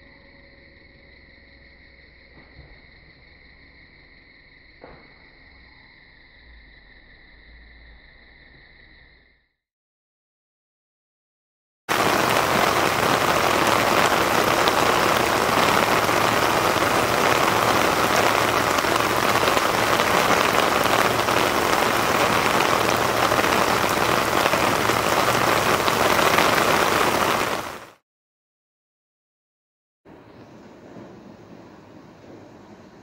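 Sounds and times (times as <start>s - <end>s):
heavy rain on river surface: 11.9s - 28.0s.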